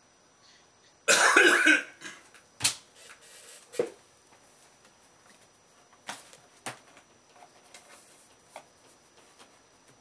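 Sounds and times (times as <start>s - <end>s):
man coughing: 1.1s - 2.2s.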